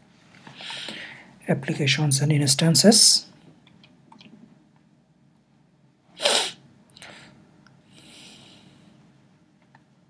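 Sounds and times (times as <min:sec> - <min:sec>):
faint short breath: 0:00.5 - 0:01.3
person sneezing: 0:06.2 - 0:06.6.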